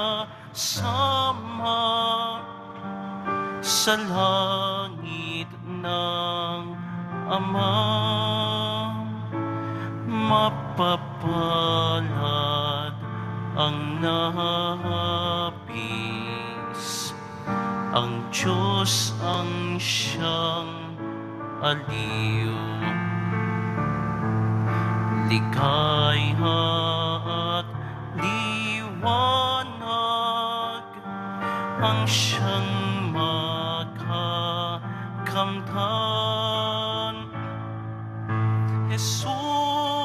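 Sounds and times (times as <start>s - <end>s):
hymn singing: 0.0s - 37.7s
sustained accompaniment: 17.3s - 29.5s.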